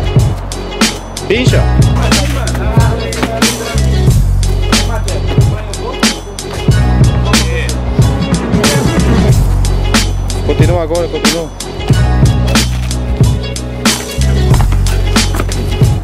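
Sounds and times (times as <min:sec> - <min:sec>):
music with drum beat and heavy bass: 0:00.0 - 0:16.0.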